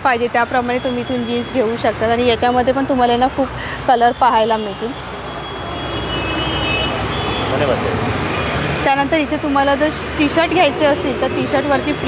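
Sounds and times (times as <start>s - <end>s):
rumble of road traffic: 0.0s - 12.0s.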